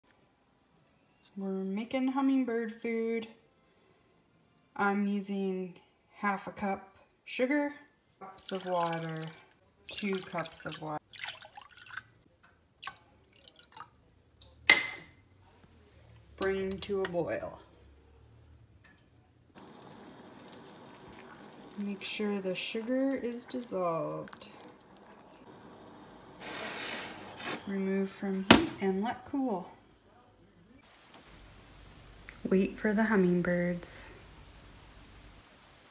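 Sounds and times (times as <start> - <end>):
faint water drips into saucepan: 8.4 - 14.8
low hiss: 14.6 - 35.9
glass cup clinking: 14.7 - 15.1.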